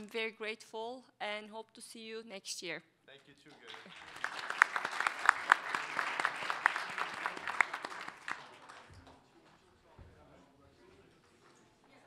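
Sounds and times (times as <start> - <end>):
audience applauding: 3.6 - 9.1.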